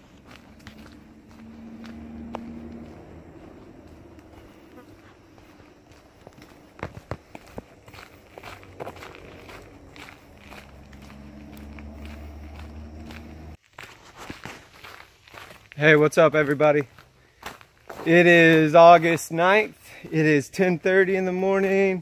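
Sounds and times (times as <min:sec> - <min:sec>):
footsteps on dirt trail: 0:00.0 - 0:22.0
low drone: 0:08.0 - 0:13.6.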